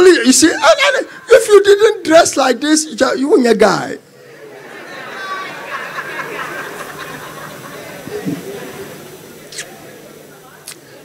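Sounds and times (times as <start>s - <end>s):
faint murmur of voices: 4.0s - 11.0s
brief hiss: 8.0s - 11.0s.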